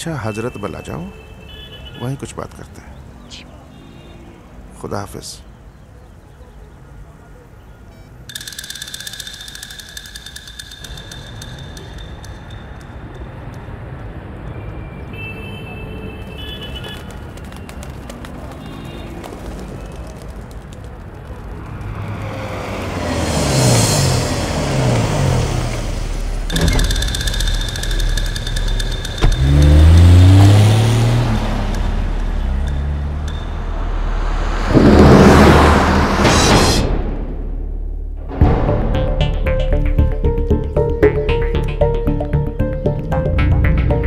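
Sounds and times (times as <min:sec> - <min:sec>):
car engine accelerating past: 0:21.9 - 0:26.6, 0:29.2 - 0:36.6.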